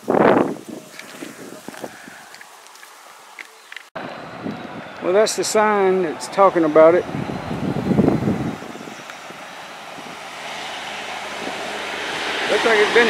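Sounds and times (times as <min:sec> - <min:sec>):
vehicle passing: 0:04.0 - 0:13.0.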